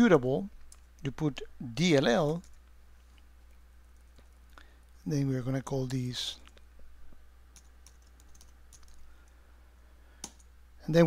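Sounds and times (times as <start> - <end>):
keyboard keystrokes: 7.6 - 9.0.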